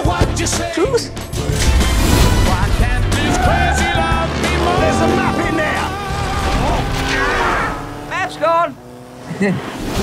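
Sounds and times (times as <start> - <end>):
motorcycle engine: 2.6 - 10.0
man shouting: 3.2 - 8.8
traffic noise: 3.2 - 10.0.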